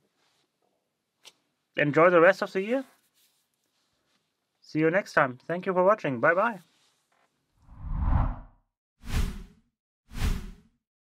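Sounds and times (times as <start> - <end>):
whooshes: 7.7 - 10.6.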